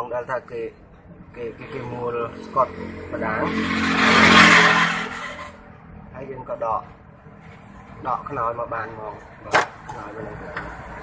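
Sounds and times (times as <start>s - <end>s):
vehicle passing by: 1.1s - 6.2s.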